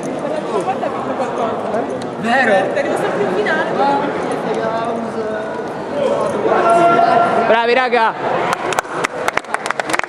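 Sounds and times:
many people talking in a hall: 0.0 - 10.0.

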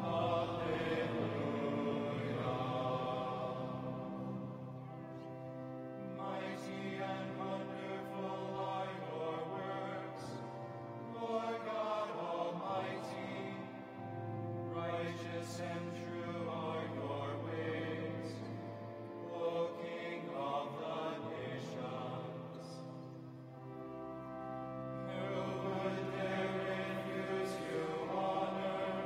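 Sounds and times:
men's choir singing a chant: 0.0 - 5.0, 6.2 - 14.1, 14.7 - 23.0, 25.0 - 29.0.

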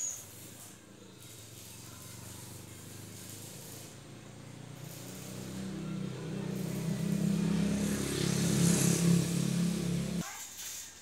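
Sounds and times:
motor engine humming: 5.4 - 10.2.

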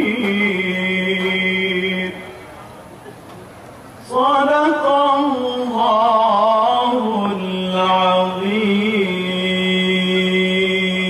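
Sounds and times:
man reciting melodically: 0.0 - 2.6, 4.0 - 11.0.

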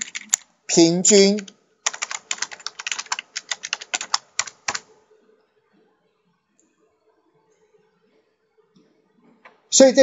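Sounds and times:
computer keyboard typing: 0.0 - 0.5, 1.1 - 4.9.

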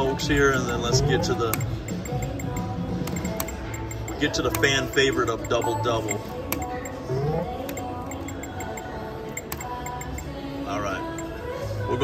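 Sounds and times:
gaming machine music and chimes: 0.0 - 10.3
short high beeps: 0.4 - 10.3.

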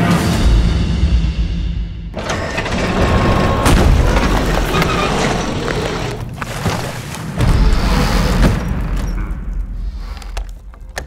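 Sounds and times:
rumbling roar of booms and crashes: 2.3 - 6.4.

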